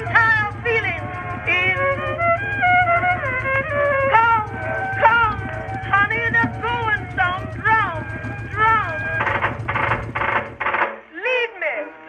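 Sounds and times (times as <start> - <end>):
low boat engine drone: 0.0 - 11.2
old-time music recording: 0.0 - 12.0.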